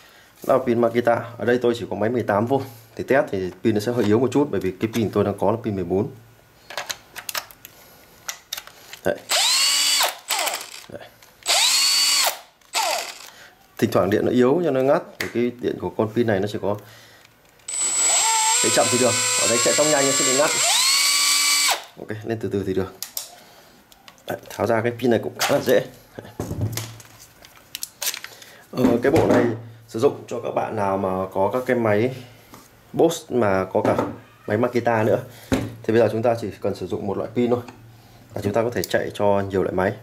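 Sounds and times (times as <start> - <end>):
cordless drill motor: 9.3 - 13.4, 17.7 - 22.0
plastic handling noise: 26.4 - 29.2.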